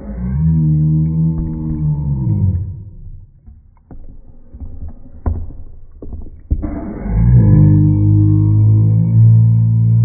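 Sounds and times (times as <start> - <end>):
low muffled moaning call: 0.0 - 3.4, 6.6 - 10.0.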